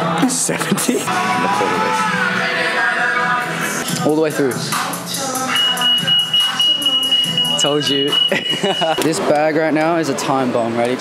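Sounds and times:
security gate alarm beep: 5.5s - 9.0s.

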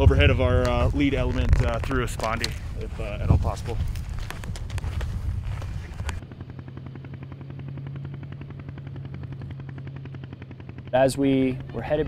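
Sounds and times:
rumbling handling noise with clicks: 0.0s - 6.3s
low pulsing hum: 0.0s - 12.0s.

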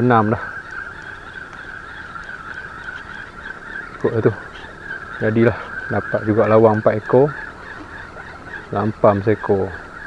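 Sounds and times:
insect chorus droning: 0.0s - 10.0s.

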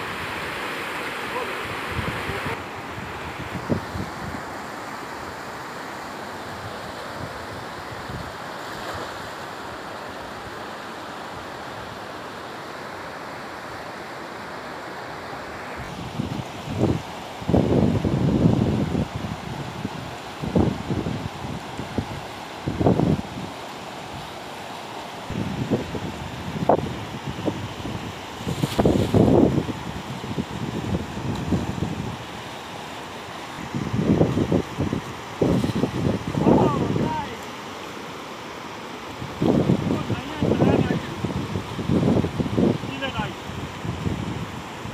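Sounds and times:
river rushing over rocks: 0.0s - 44.9s
wind buffeting microphone: 1.8s - 4.5s, 15.8s - 23.5s, 25.3s - 32.3s, 33.6s - 37.4s, 39.2s - 44.9s.

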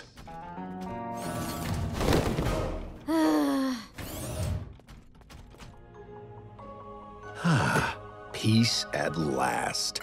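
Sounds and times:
soft background music: 5.3s - 10.0s.

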